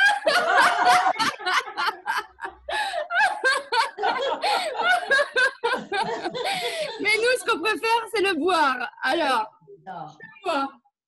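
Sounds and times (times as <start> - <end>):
women laughing: 0.0 - 7.4.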